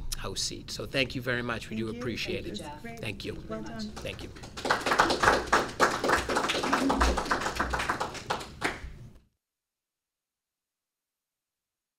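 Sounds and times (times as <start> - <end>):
audience applauding: 3.8 - 9.0.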